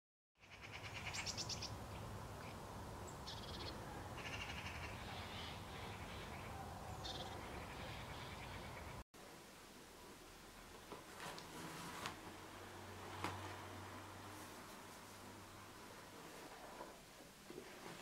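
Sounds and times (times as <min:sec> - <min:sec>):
birds chirping and trilling: 0:00.4 - 0:09.0.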